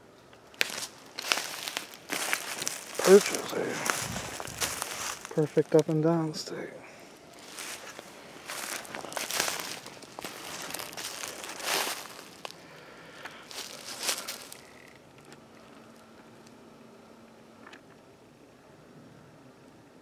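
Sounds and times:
faint steady hum: 0:00.0 - 0:20.0
footsteps crunching through dry leaves: 0:00.5 - 0:14.9.

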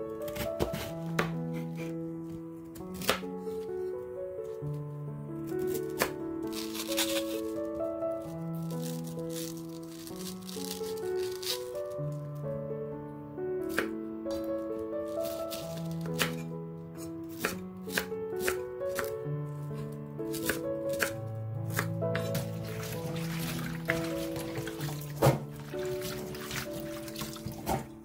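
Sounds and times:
background music: 0:00.0 - 0:28.0
knife cutting cabbage on board: 0:00.3 - 0:01.9, 0:02.9 - 0:03.3, 0:05.6 - 0:07.6, 0:13.7 - 0:14.4, 0:15.2 - 0:19.1, 0:20.3 - 0:28.0
cabbage leaves rustling: 0:05.5 - 0:12.1, 0:15.1 - 0:16.4, 0:22.1 - 0:28.0.

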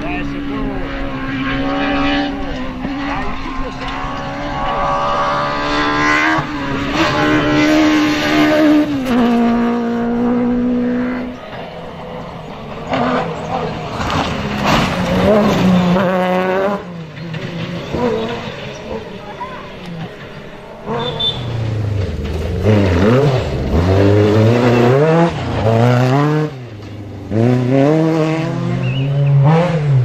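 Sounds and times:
buggy engines at high revs: 0:00.0 - 0:30.0.

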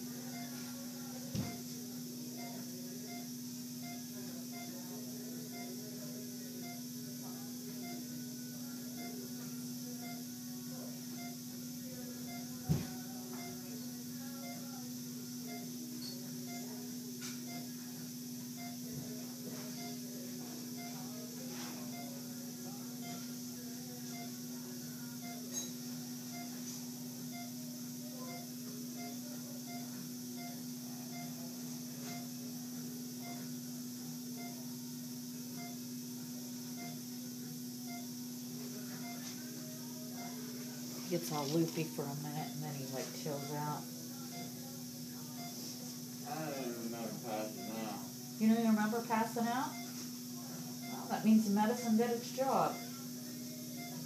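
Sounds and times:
patient monitor beeping: 0:00.0 - 0:54.0
steady low hum: 0:00.0 - 0:54.0.

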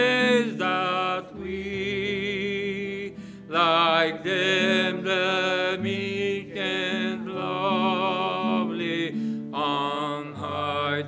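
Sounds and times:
man singing into a microphone: 0:00.0 - 0:11.0
strummed acoustic guitar: 0:00.0 - 0:11.0
singer breathing in: 0:03.2 - 0:03.5, 0:09.2 - 0:09.5.

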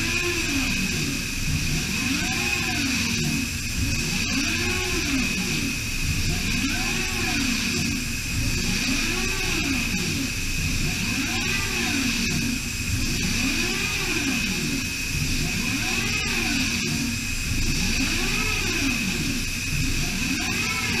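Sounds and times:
coolant spraying: 0:00.0 - 0:21.0
low tone rising and falling: 0:00.0 - 0:21.0
milling spindle whine: 0:00.0 - 0:21.0.

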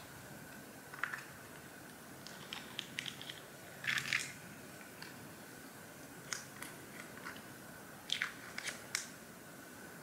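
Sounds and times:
faint high hum: 0:00.0 - 0:10.0
crackling crinkle: 0:00.9 - 0:05.2.

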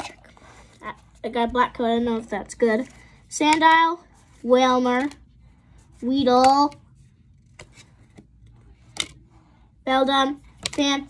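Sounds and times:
trading cards shuffling: 0:06.0 - 0:09.2.

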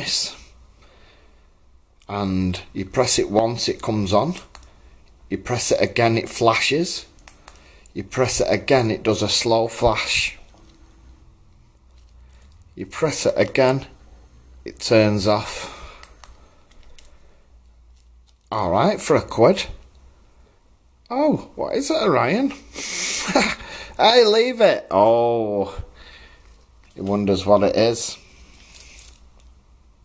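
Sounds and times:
light metallic clicks and clinks: 0:10.5 - 0:12.8, 0:16.0 - 0:18.5.

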